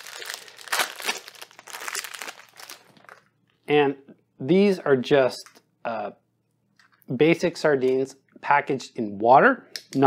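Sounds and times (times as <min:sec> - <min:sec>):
packaging crinkling and tearing: 0:00.0 - 0:03.3.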